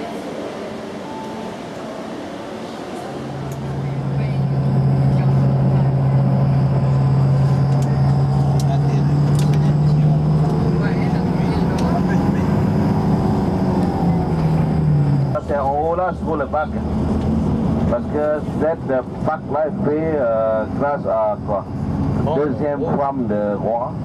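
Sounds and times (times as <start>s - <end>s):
car engine and road noise: 0.0s - 24.0s.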